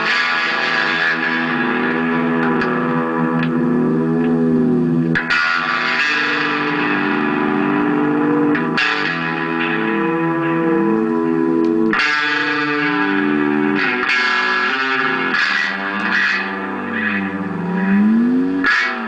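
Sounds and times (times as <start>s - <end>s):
electric guitar with ring modulation: 0.0s - 19.0s.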